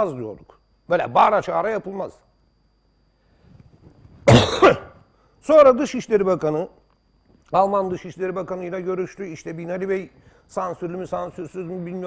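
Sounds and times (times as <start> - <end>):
man coughing: 4.3 - 5.0.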